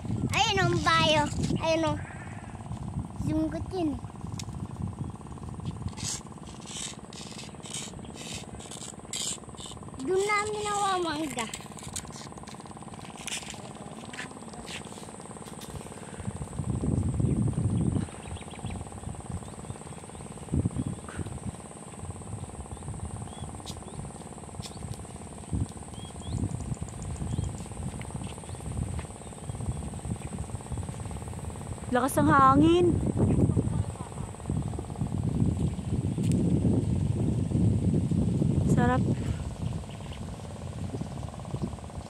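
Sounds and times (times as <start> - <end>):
high insect drone: 0.0 - 42.0
wind gusting across microphone: 0.0 - 42.0.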